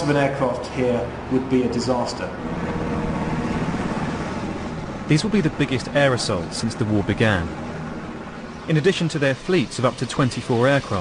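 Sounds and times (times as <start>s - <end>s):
helicopter rotor beat: 2.3s - 11.0s.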